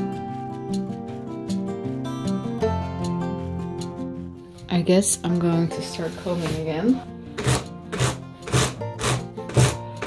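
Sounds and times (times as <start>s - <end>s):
background music: 0.0s - 10.0s
brush stroking through fibre: 5.7s - 8.7s.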